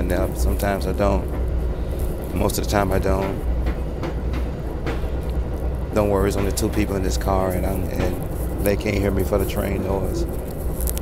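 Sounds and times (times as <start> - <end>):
train rumbling from inside: 0.0 - 11.0.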